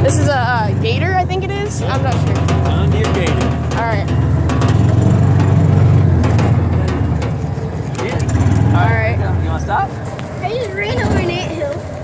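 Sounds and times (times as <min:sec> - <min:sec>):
utility vehicle engine running: 0:00.0 - 0:12.0
body knocks and rattles: 0:01.2 - 0:08.8.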